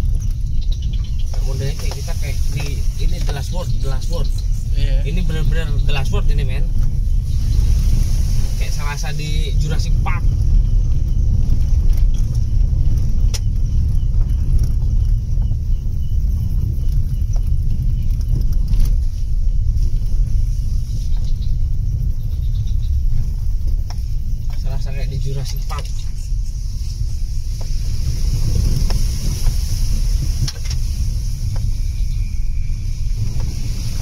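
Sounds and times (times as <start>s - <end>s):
car rumbling over dirt track: 0.0s - 34.0s.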